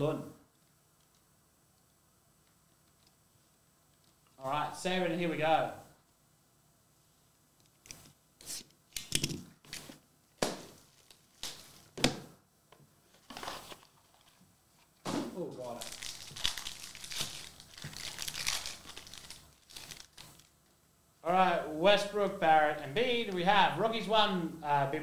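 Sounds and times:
plastic shrink-wrap crinkling: 10.7s - 11.9s, 15.6s - 20.6s
plastic wrapper tearing open: 15.7s - 20.6s.

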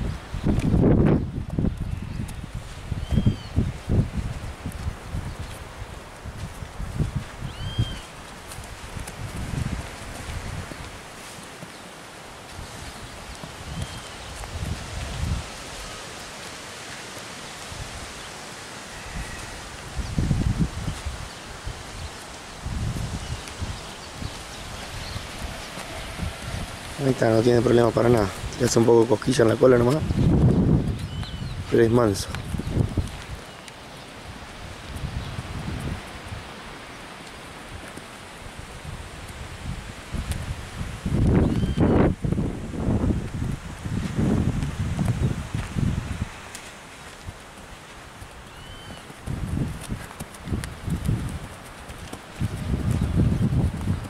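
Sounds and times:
horse hooves low thumps: 0.0s - 18.3s, 18.9s - 54.0s
poncho flapping: 0.2s - 18.2s, 19.4s - 36.5s, 37.7s - 54.0s
bird chirping: 7.5s - 8.1s, 30.9s - 31.6s, 41.4s - 42.0s, 48.5s - 49.1s.

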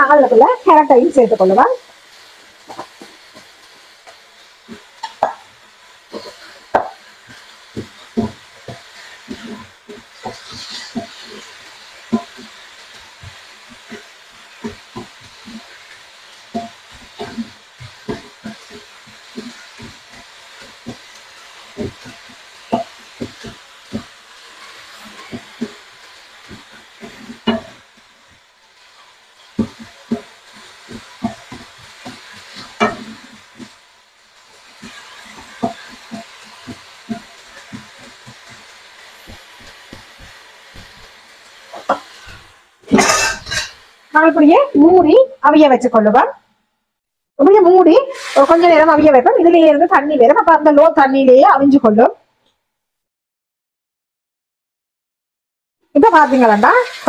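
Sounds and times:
food sizzling: 0.0s - 46.5s, 47.4s - 52.3s, 55.8s - 57.0s
wooden spatula scraping a pan: 0.3s - 43.9s, 47.8s - 49.3s
spatula tapping a pan: 2.6s - 27.8s, 28.8s - 33.8s, 34.6s - 41.1s, 41.7s - 42.3s.

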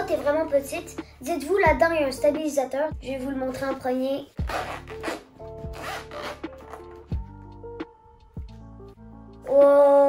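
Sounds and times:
background music with held notes: 0.0s - 10.0s
zipper pulled open: 4.4s - 7.1s.

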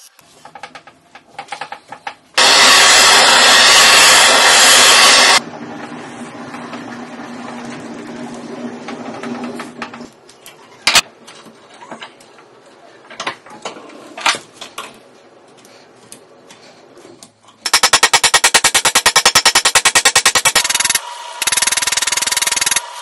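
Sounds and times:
loud rushing machine noise: 2.4s - 9.8s.

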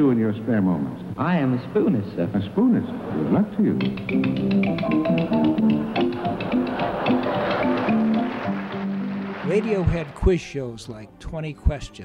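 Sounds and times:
instrumental accompaniment: 3.6s - 10.1s
spoons clicking rhythm: 3.8s - 9.0s.

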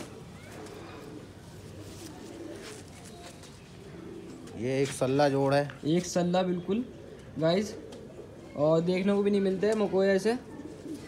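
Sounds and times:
pigeons cooing softly: 0.0s - 11.0s.

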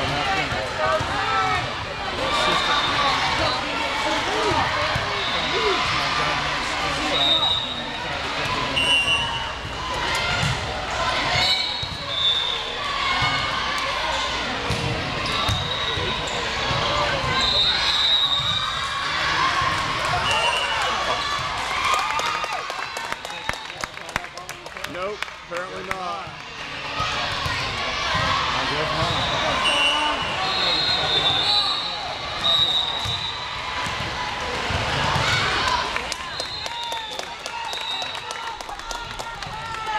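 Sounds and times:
spectator chatter: 0.0s - 39.9s
volleyball bounced and struck: 14.6s - 16.1s.

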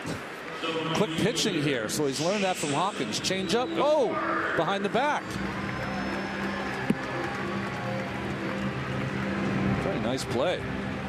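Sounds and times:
ballpark crowd noise: 0.0s - 11.0s.

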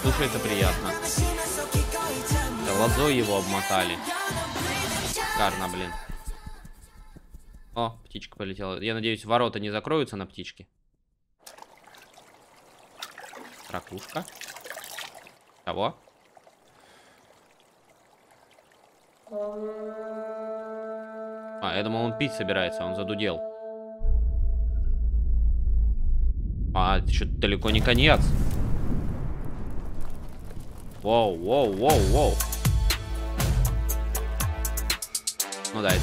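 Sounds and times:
faint trickling water: 11.4s - 21.3s.

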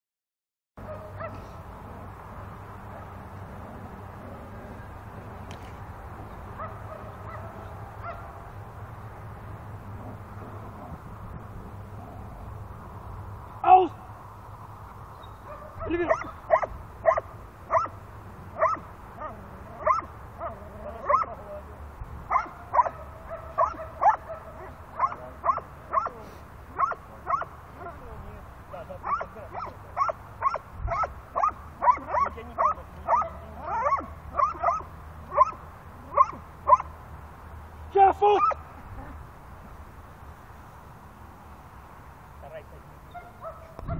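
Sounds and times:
dog barking: 0.8s - 1.5s, 6.6s - 8.4s, 15.5s - 18.0s, 18.6s - 21.4s, 22.3s - 26.2s, 26.8s - 27.5s, 29.0s - 36.9s, 43.1s - 43.9s
person speaking command: 13.6s - 14.0s, 37.9s - 38.6s.

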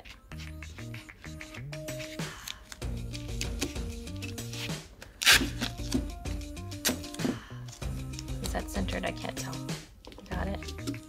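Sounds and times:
background music: 0.0s - 11.0s
masking tape ripping: 2.0s - 6.1s, 6.7s - 7.3s.

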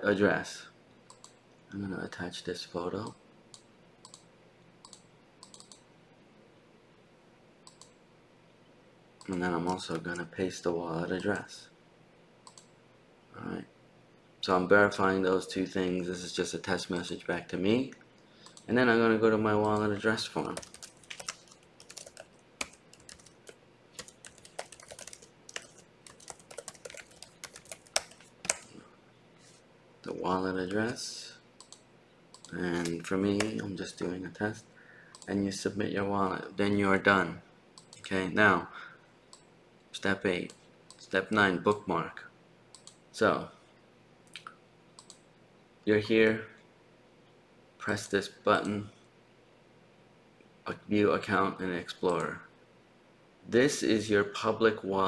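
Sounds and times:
computer mouse clicks: 1.1s - 1.4s, 3.5s - 5.8s, 7.6s - 8.0s, 12.4s - 12.7s, 18.4s - 18.7s, 31.6s - 33.6s, 35.1s - 35.3s, 37.8s - 38.1s, 42.7s - 43.0s, 44.3s - 45.2s
typing on computer keyboard: 4.8s - 5.8s, 19.6s - 28.7s.

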